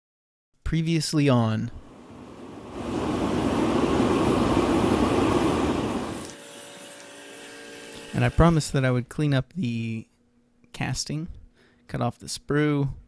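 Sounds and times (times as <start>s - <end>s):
oil burner rushing: 1.9s - 6.4s.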